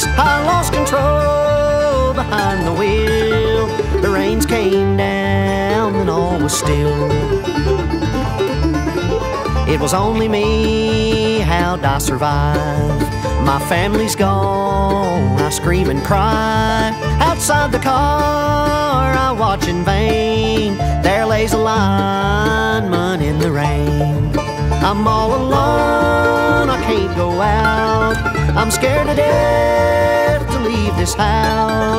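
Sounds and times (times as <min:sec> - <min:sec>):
person singing: 0:00.0 - 0:07.5, 0:09.4 - 0:31.9
acoustic guitar: 0:00.0 - 0:31.9
banjo picking: 0:00.0 - 0:31.9
bass notes: 0:00.0 - 0:31.9
bluegrass band playing: 0:00.0 - 0:31.9.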